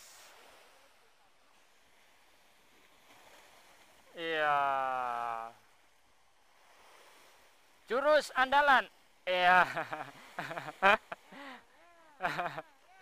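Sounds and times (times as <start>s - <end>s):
waves breaking against seawall: 0.0s - 11.6s.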